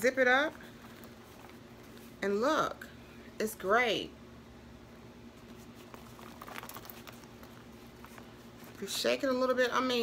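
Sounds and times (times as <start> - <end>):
contents shifting inside pouch: 0.5 - 2.1, 5.4 - 8.8
pouch rustling: 0.5 - 2.2, 5.4 - 9.0.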